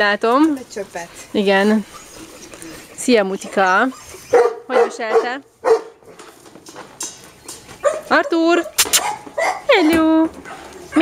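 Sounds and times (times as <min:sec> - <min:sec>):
dog scuffing in kennel: 0:05.6 - 0:09.6
brief hiss: 0:08.8 - 0:09.0.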